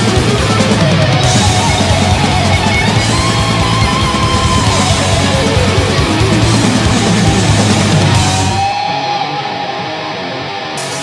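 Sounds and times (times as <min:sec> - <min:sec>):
thrash metal band playing: 0:00.0 - 0:11.0.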